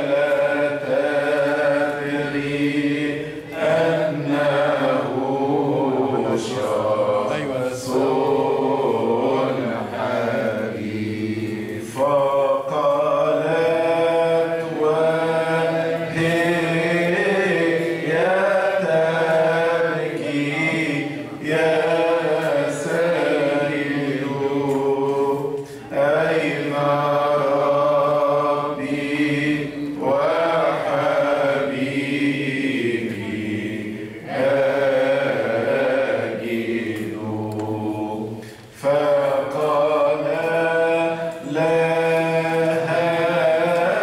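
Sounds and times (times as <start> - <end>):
man chanting a hymn: 0.0 - 44.0.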